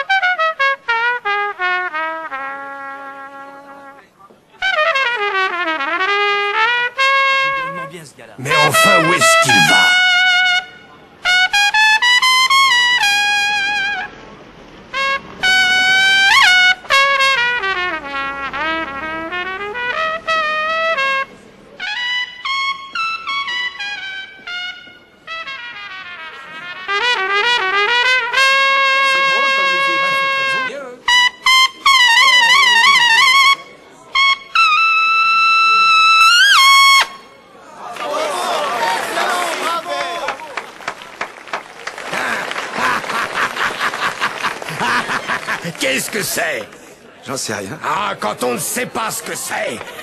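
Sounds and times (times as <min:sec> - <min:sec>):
solo jazz trumpet: 0:00.0 - 0:04.0, 0:04.6 - 0:07.9, 0:08.5 - 0:14.1, 0:14.9 - 0:37.3.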